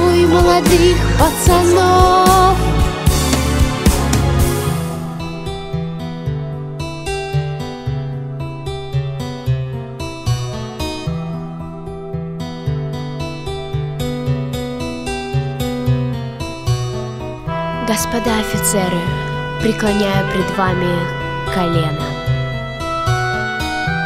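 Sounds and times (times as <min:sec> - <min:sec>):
steady bass line: 0:00.0 - 0:08.4, 0:16.7 - 0:24.0
plucked acoustic guitar: 0:00.0 - 0:24.0.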